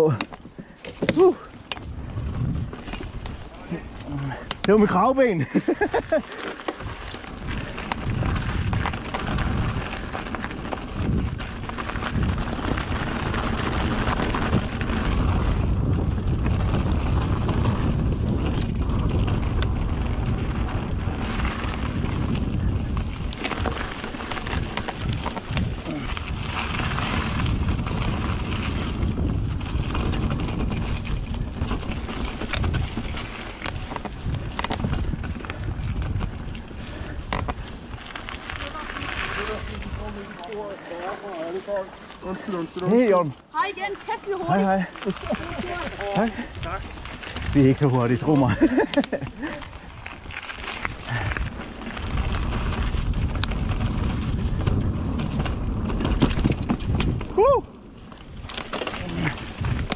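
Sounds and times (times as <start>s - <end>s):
bike rattling over bumps: 0.0s - 59.9s
bike tyre roar: 0.0s - 59.9s
wind rush over microphone: 1.0s - 4.6s, 6.8s - 40.3s, 45.2s - 59.9s
short high-pitched squeal: 2.4s - 2.9s, 9.4s - 11.7s.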